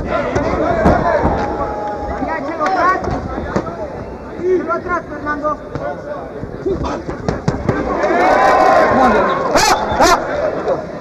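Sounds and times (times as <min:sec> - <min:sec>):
crowd shouting: 0:00.0 - 0:04.6, 0:06.9 - 0:11.0.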